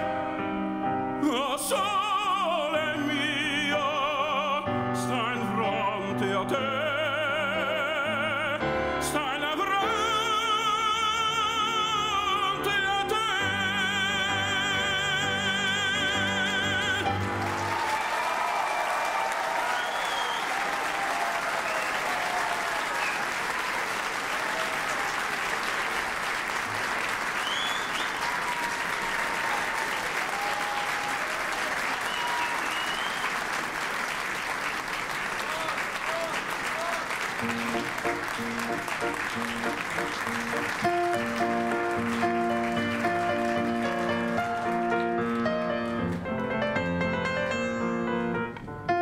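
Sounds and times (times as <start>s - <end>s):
piano playing held chords: 0.0s - 17.7s, 37.4s - 49.0s
audience applauding: 16.0s - 47.8s.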